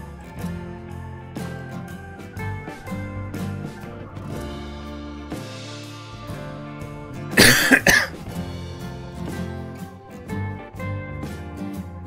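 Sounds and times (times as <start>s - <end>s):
background music: 0.0s - 12.0s
person coughing into microphone: 7.4s - 8.2s.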